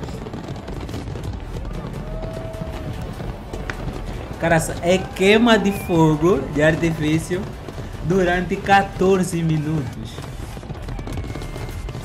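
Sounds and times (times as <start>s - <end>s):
fireworks bursting and crackling: 0.0s - 12.0s
music playing: 1.4s - 10.5s.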